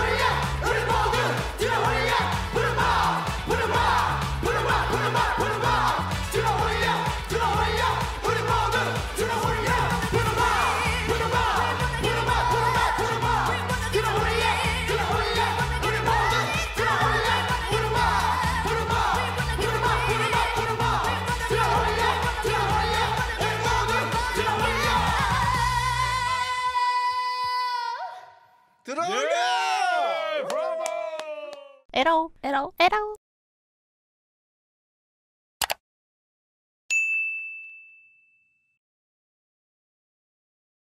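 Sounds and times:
backing track with bass beat: 0.0s - 26.1s
group singing dance-pop song: 0.0s - 27.7s
bright bell ding: 36.9s - 38.8s.

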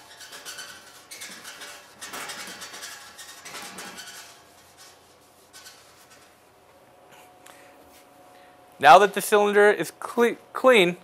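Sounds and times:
cloth rag wiping strokes: 0.0s - 6.6s.

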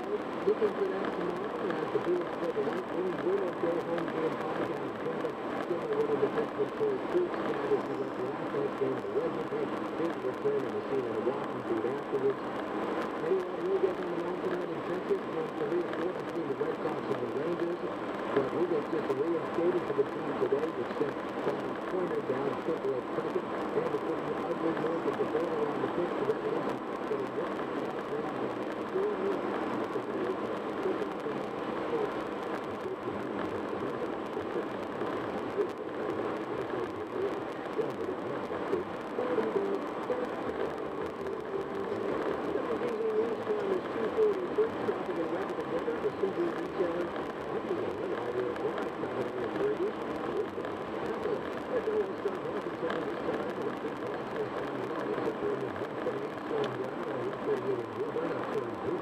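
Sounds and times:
faint radio voice: 0.0s - 59.0s.

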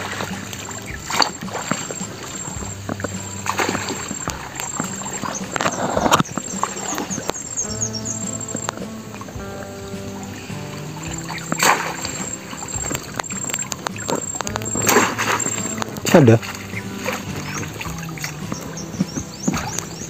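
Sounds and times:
loud splash: 0.0s - 7.2s, 10.2s - 20.0s
background music: 0.0s - 20.0s
water sloshing and splashing: 0.0s - 20.0s.

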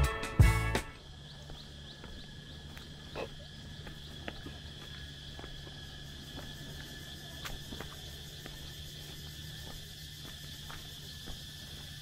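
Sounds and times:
footsteps on dirt path: 0.0s - 12.0s
high insect drone: 0.0s - 12.0s.

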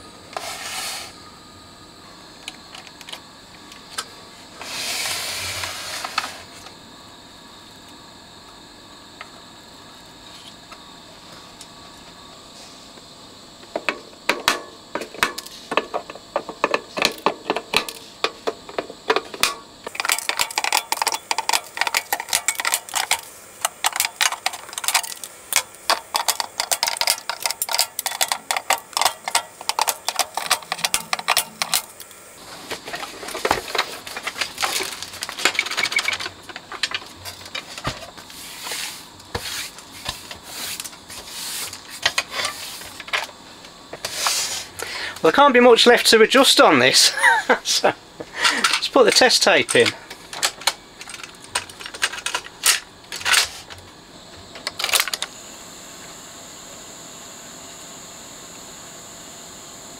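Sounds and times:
rough scraping and rustling: 0.4s - 1.2s, 37.6s - 43.0s, 44.0s - 44.7s.

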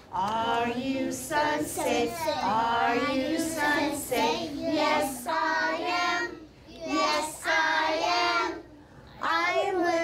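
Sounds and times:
young children singing: 0.1s - 10.0s.

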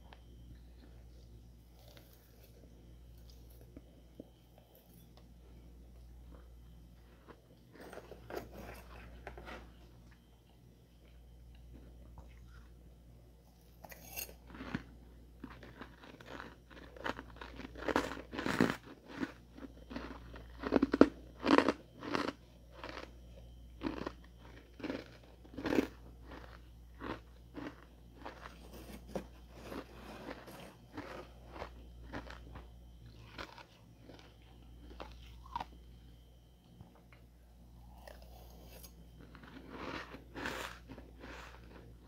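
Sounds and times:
faint steady hum: 0.0s - 42.0s
ice crunching while chewed: 0.1s - 5.3s, 6.0s - 10.3s, 13.8s - 35.9s, 37.8s - 42.0s.

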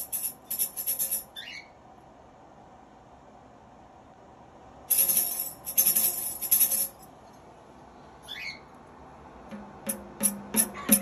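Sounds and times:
cockatoo squawk: 8.3s - 8.7s, 10.7s - 11.0s
tambourine tap: 9.5s - 11.0s.

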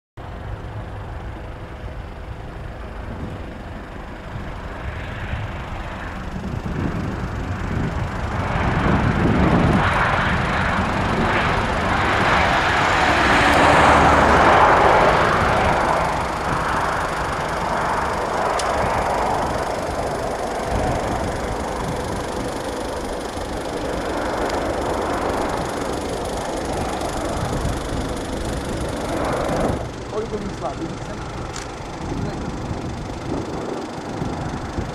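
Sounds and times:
jet engines with faint whine: 0.2s - 34.9s.

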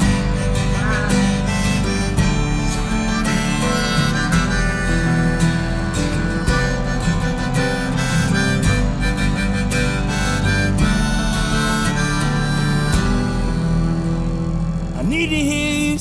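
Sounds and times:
harmonica melody: 0.0s - 15.2s
strummed acoustic guitar: 0.0s - 16.0s.

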